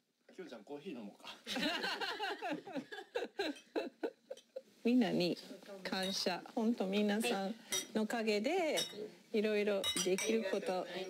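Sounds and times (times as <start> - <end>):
wine glasses clinking: 7.7 - 8.0, 8.7 - 9.0, 9.8 - 10.6.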